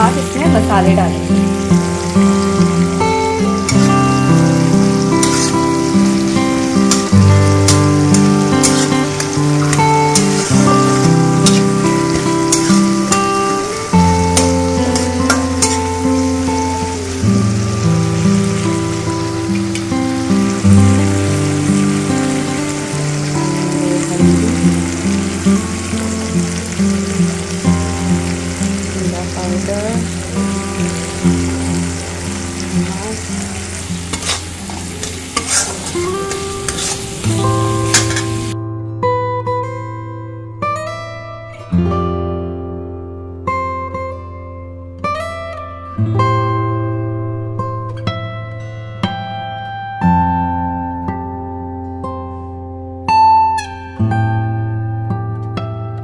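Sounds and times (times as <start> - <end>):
masala sizzling in hot oil: 0.0 - 38.6
background music: 0.0 - 56.0
metal spatula scraping a pan: 4.9 - 13.4, 14.2 - 16.0, 33.4 - 38.5.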